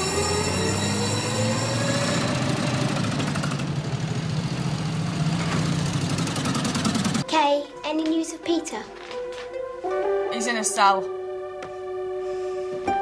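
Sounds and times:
old vehicle engine running: 0:00.8 - 0:07.2.

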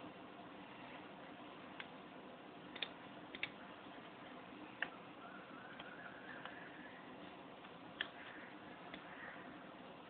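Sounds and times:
faint steady hiss: 0:00.0 - 0:10.0
computer mouse clicking: 0:02.7 - 0:03.6, 0:05.7 - 0:06.7, 0:07.6 - 0:09.3.

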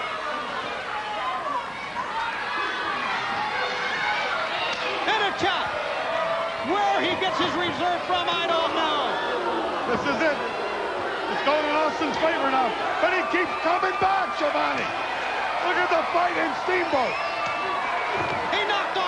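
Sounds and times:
crowd yelling and cheering: 0:00.0 - 0:19.0.

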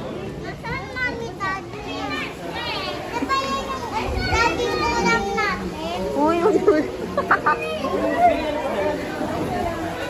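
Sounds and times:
children's voices: 0:00.0 - 0:10.0.

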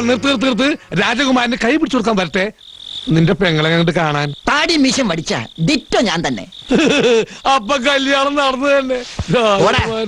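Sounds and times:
cricket chirring: 0:00.0 - 0:10.0.

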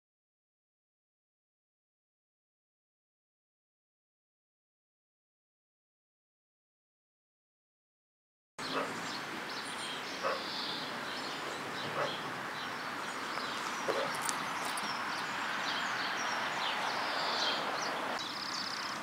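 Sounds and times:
short bird calls: 0:08.6 - 0:19.0
small birds chirping: 0:08.6 - 0:19.0
steady background hiss: 0:08.6 - 0:19.0.

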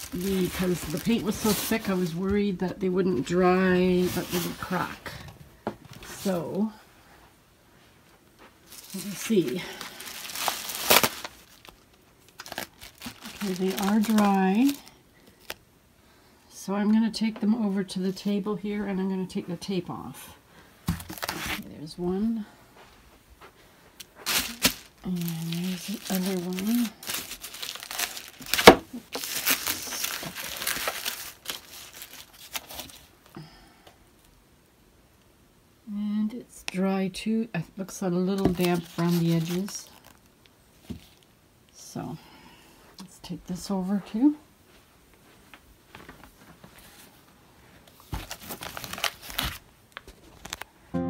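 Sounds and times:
rustle on plastic sheeting: 0:00.0 - 0:05.1, 0:08.4 - 0:15.6, 0:24.0 - 0:33.2, 0:38.4 - 0:40.2.

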